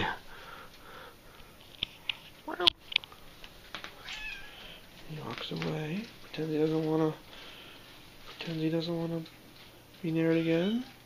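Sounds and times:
cat meowing: 0:04.0 - 0:04.8.

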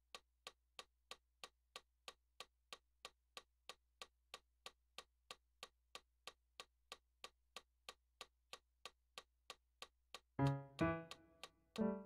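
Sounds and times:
metronome clicking: 0:10.2 - 0:12.0
digital piano chords: 0:10.4 - 0:12.0.

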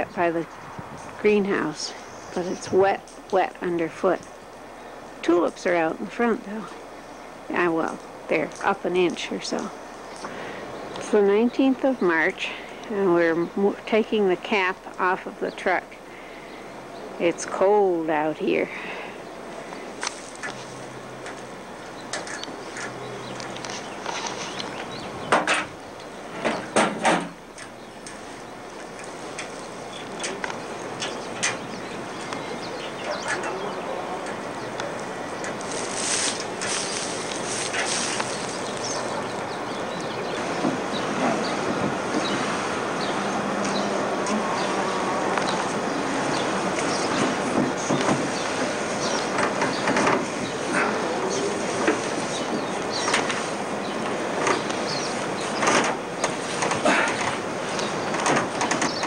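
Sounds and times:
steady hiss: 0:15.7 - 0:59.0.

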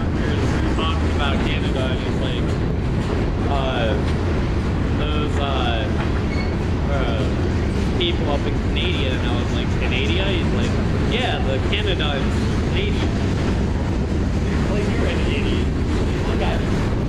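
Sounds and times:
wheels rumbling on rail: 0:00.0 - 0:17.0
wheels squealing: 0:06.0 - 0:06.7.

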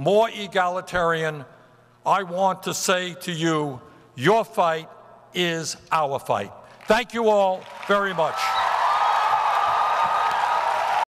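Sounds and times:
audience applauding: 0:07.6 - 0:11.0.

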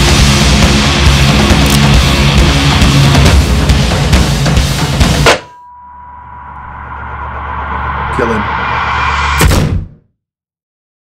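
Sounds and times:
heavy drum-driven trailer music: 0:00.0 - 0:05.5, 0:06.2 - 0:10.0
hard impact hit: 0:05.1 - 0:10.0
low drone: 0:05.3 - 0:09.5.

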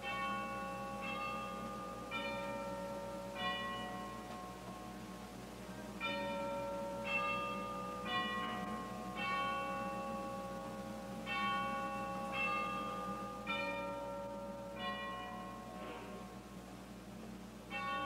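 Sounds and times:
bells ringing slow notes: 0:00.0 - 0:18.0.

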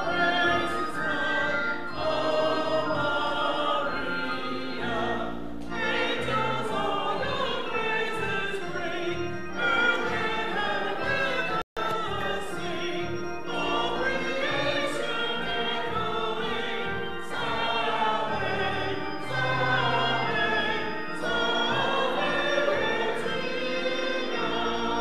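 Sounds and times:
church choir singing a hymn: 0:00.0 - 0:25.0
organ low notes: 0:00.0 - 0:25.0.

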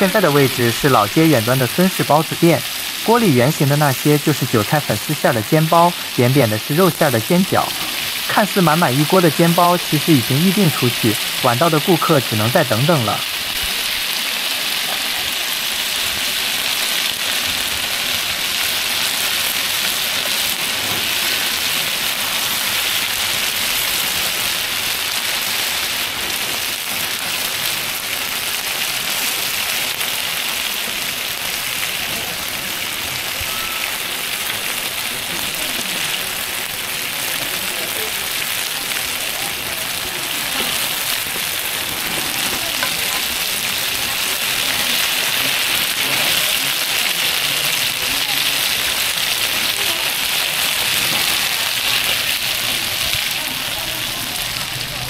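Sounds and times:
dumplings sizzling in oil: 0:00.4 - 0:55.0.

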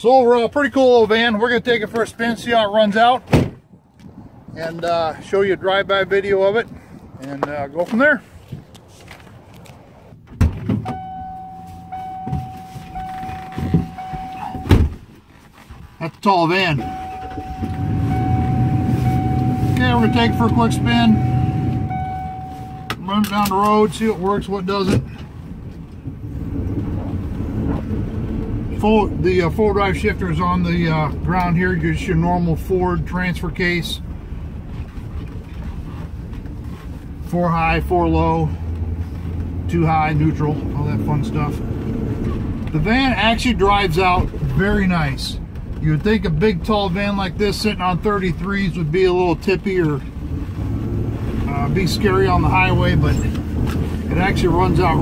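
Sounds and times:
van engine low rumble: 0:00.0 - 0:55.0
rustling of person climbing in: 0:07.3 - 0:20.2, 0:34.6 - 0:37.3
door warning chime: 0:10.9 - 0:14.8, 0:16.7 - 0:23.1
door shutting with a thud: 0:13.6 - 0:15.0.

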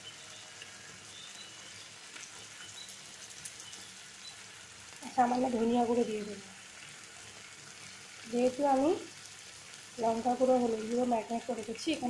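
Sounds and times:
curry sizzling in a pan: 0:00.0 - 0:12.0.

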